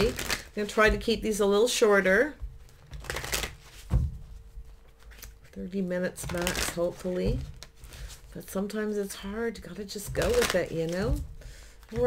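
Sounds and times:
cards shuffling: 2.8 - 3.9, 4.7 - 5.5.

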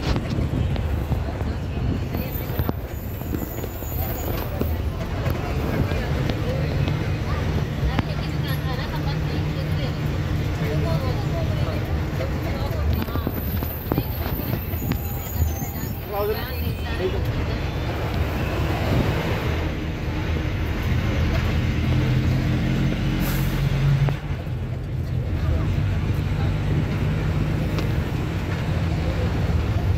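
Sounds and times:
bus engine and road rumble: 0.0 - 29.9.

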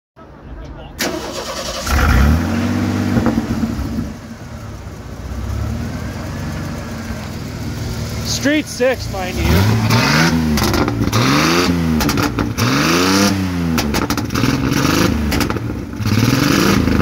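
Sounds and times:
exhaust crackle: 1.0 - 17.0
pickup truck engine revving: 1.0 - 17.0.

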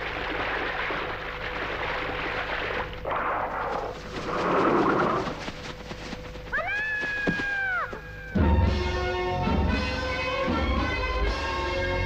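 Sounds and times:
rushing rustling noise: 3.5 - 7.6
high-pitched wailing cry: 6.5 - 8.4.

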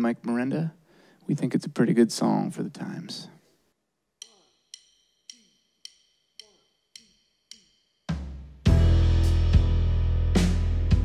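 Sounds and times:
drumsticks clicking together: 4.2 - 7.9.

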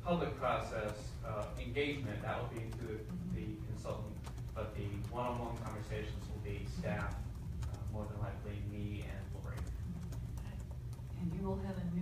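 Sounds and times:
low room hum: 0.0 - 12.0
laptop keyboard typing: 0.1 - 12.0.

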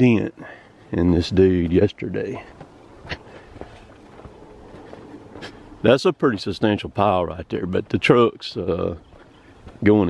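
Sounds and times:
low outdoor hiss: 0.0 - 10.0
footsteps on dry dirt: 0.6 - 10.0.

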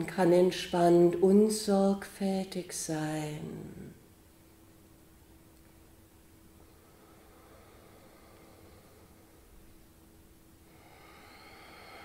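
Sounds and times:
slow breath through nose: 10.7 - 12.0.

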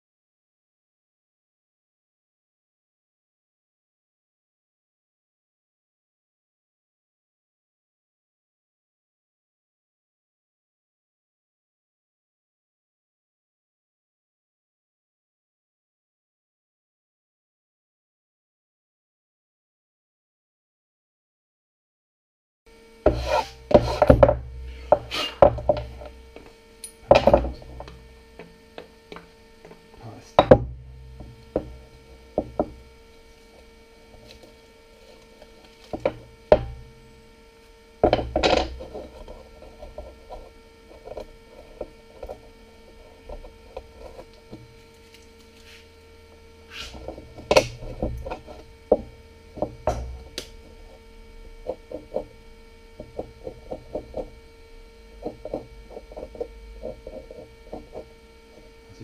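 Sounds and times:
electrical hum: 22.7 - 59.0
wooden boards knocking on workbench: 23.1 - 26.1, 27.1 - 27.9, 30.4 - 32.8, 38.0 - 39.0, 47.0 - 50.4.

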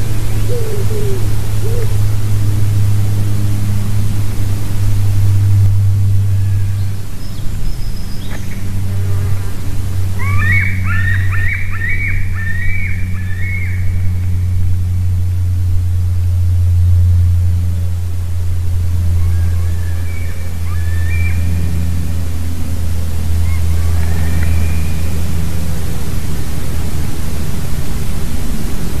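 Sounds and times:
bird calling: 0.0 - 2.2, 10.2 - 14.4, 19.1 - 21.9, 23.3 - 25.2
steady low hum: 0.0 - 29.0.

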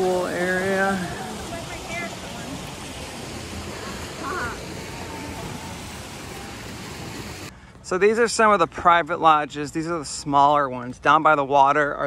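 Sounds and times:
distant voices of swimmers: 0.0 - 7.5
steady hiss: 0.0 - 7.7
high-pitched voice call: 3.8 - 5.6.

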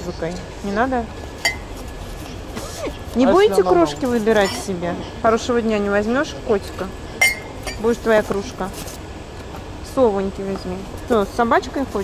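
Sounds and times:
ceramic mug clinking: 1.4 - 1.7, 7.2 - 7.9.

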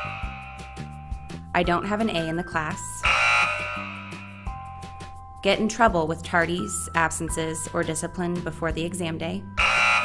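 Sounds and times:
light background music: 0.0 - 10.0
wrong-answer buzzer: 3.0 - 4.4, 9.6 - 10.0.

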